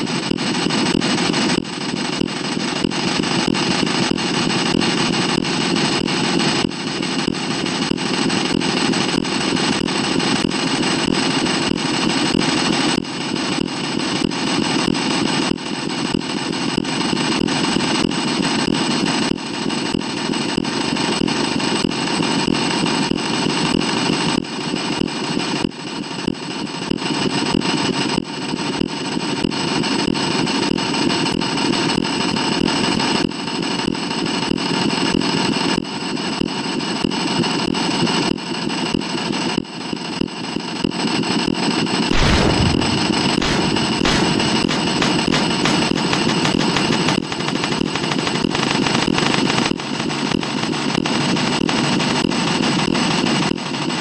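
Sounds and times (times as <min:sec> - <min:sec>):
high-pitched whine: 0:42.1 - 0:50.0
harsh digital noise: 0:42.1 - 0:50.2.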